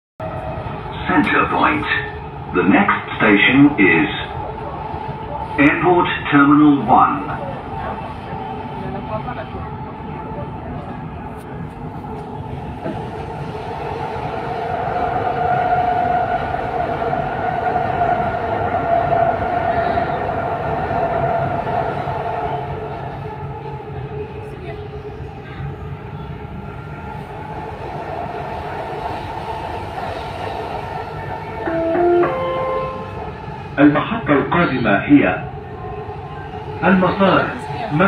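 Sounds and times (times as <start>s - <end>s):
train rumbling with whine: 0.2s - 38.0s.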